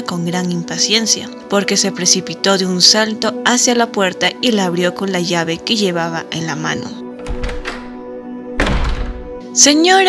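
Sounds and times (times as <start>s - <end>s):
background music: 0.0s - 10.0s
door unlocking and opening: 7.2s - 9.4s.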